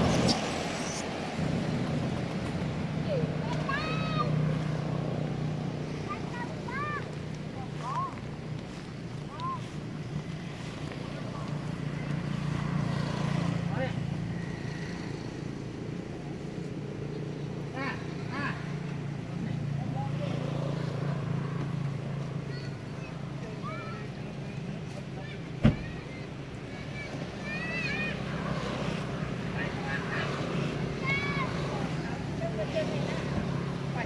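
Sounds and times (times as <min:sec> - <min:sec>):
low engine-like hum: 0:00.0 - 0:34.0.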